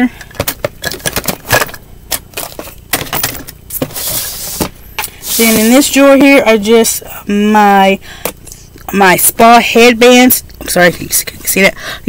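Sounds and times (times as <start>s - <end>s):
items clattering in plastic drawer: 0.2s - 4.6s.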